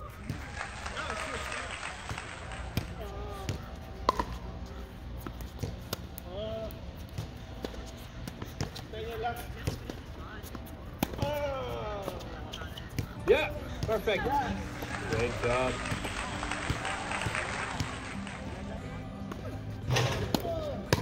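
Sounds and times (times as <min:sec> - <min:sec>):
tennis balls struck by racquets: 0:00.0 - 0:12.2, 0:12.8 - 0:21.0.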